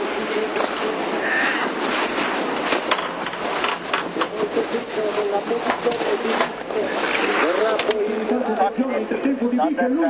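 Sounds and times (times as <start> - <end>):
commentator talking: 0.0 - 1.6, 4.0 - 10.0
steady rushing noise: 0.0 - 10.0.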